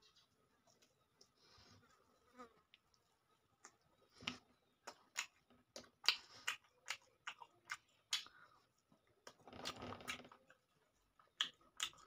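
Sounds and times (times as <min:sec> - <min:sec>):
wet chewing mouth clicks: 0:03.6 - 0:08.4, 0:09.2 - 0:12.0.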